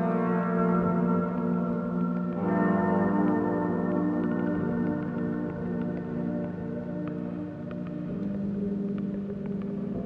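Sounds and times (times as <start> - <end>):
ambient drone music: 0.0 - 10.0
faint clicks: 2.1 - 10.0.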